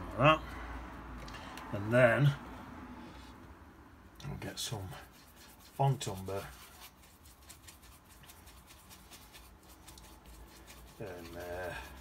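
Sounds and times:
paintbrush scratching in palette: 4.3 - 12.0.

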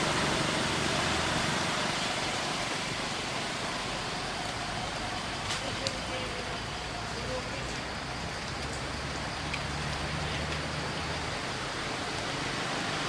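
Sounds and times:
steady rushing outdoor noise: 0.0 - 13.0.

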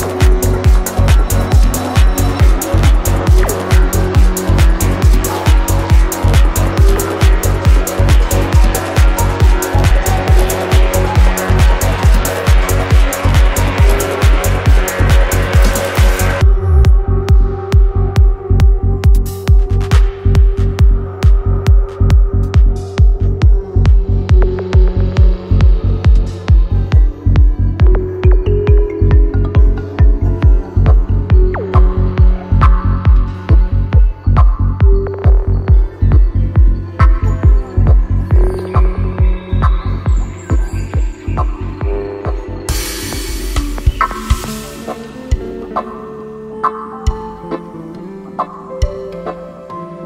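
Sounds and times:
kick drum: 0.0 - 44.6
rolling bass line: 0.0 - 46.0
psytrance music: 0.0 - 50.0
hi-hats: 42.7 - 45.1.

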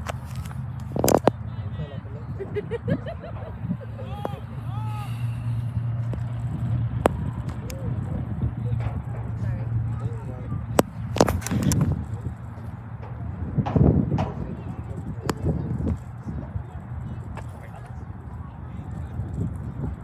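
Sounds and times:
steady low rumble: 0.0 - 20.0
distant shouts of players: 4.0 - 5.8
sharp knocks: 10.7 - 16.0.

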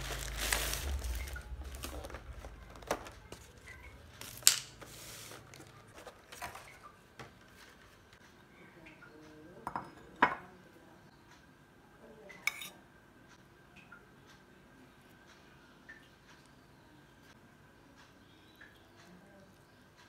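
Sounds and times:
dishes clacking on stone countertop: 9.6 - 10.6, 12.3 - 12.8.

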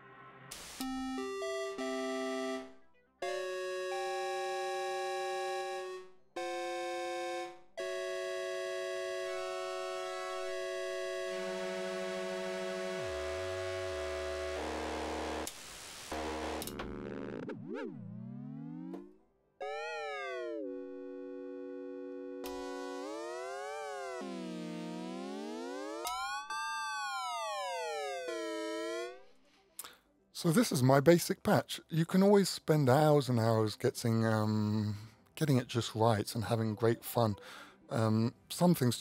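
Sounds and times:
synthesizer notes and chords: 0.0 - 29.3.

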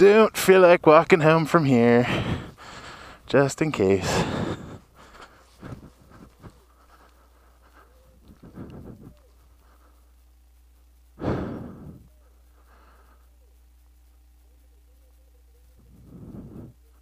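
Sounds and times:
person breathing out heavily: 2.0 - 10.2, 11.2 - 13.4, 15.9 - 16.8
footsteps clicking: 4.0 - 9.9.

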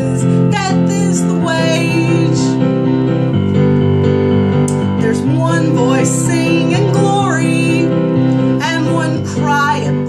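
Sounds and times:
piano chords: 0.0 - 10.0
person singing: 5.0 - 10.0.

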